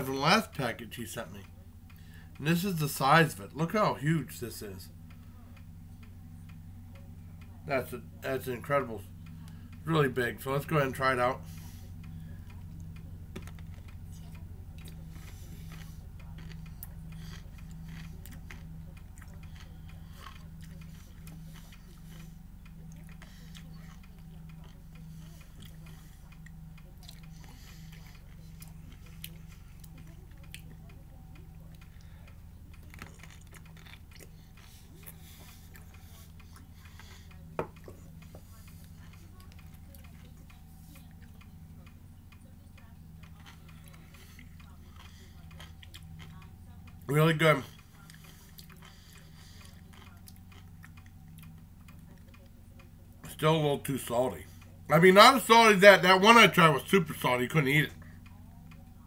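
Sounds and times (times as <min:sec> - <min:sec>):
low hum with ticking pulse: 0:00.0 - 0:59.0
chewing a crunchy pickle: 0:11.5 - 0:41.6, 0:43.2 - 0:47.1, 0:47.7 - 0:52.6.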